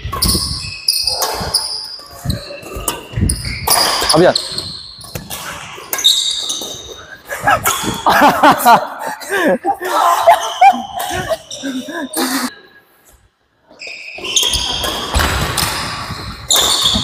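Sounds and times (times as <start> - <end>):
sneakers squeaking on wooden floor: 0.0 - 8.0, 10.2 - 12.5, 13.6 - 17.0
rackets hitting shuttlecock: 0.1 - 6.9, 14.2 - 17.0.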